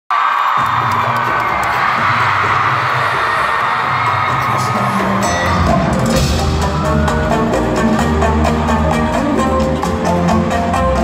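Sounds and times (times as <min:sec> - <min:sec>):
audience cheering and screaming: 0:00.1 - 0:09.2
live concert music: 0:00.5 - 0:11.0.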